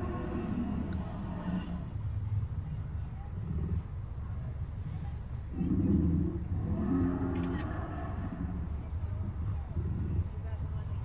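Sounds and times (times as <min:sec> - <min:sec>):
deep dinosaur growl: 0:00.0 - 0:02.1, 0:03.2 - 0:04.0, 0:05.5 - 0:10.4
car rumble: 0:00.0 - 0:11.0.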